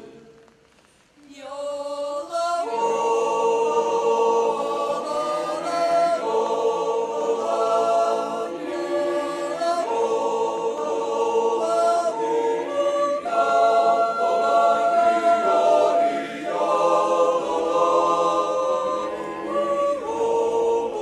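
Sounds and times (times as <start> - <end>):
choir singing held chords: 0.0 - 0.3, 1.5 - 21.0.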